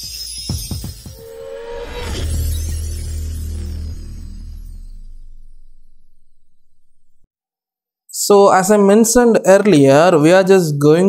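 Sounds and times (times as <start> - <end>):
logo intro music: 0.6 - 7.3
deep bass swell: 1.1 - 7.3.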